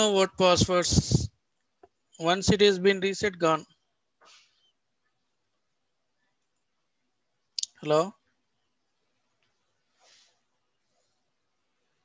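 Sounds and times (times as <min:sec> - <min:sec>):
faint breath-like rustle: 0:04.2 - 0:04.8, 0:09.7 - 0:11.5.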